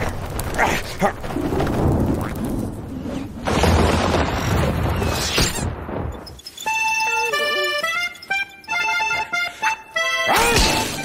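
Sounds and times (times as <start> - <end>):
music with clear notes: 6.7 - 10.4.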